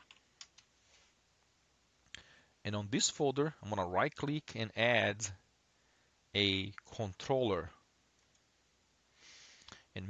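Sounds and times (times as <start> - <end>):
computer keyboard keystrokes: 0.0 - 0.7.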